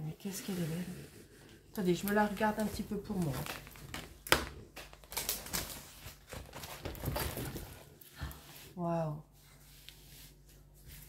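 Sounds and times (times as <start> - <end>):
plastic film rustling and crinkling: 1.8 - 8.0.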